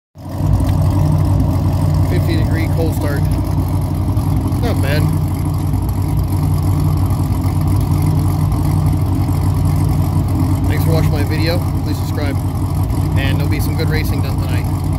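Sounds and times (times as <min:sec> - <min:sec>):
car engine idling: 0:00.2 - 0:14.9.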